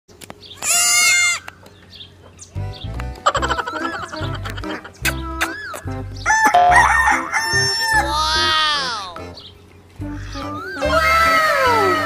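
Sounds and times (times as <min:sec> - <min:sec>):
baby goat bleating: 0:00.6 - 0:01.5, 0:08.0 - 0:09.2.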